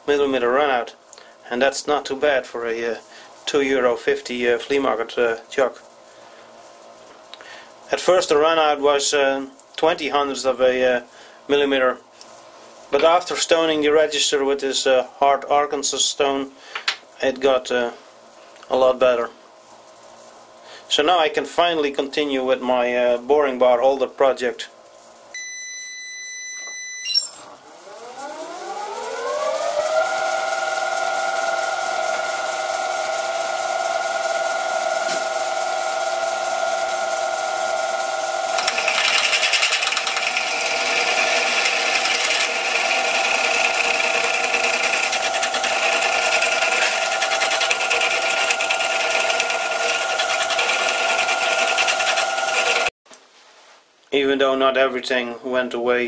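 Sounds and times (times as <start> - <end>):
short steady beep: 25.4 - 27.6
lathe motor whining: 27.5 - 52.9
drill cutting into steel: 38.5 - 52.9.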